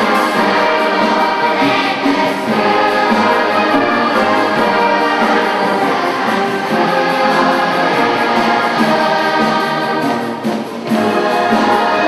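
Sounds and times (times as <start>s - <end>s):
children's choir singing: 0.0s - 12.0s
orchestra playing: 0.0s - 12.0s.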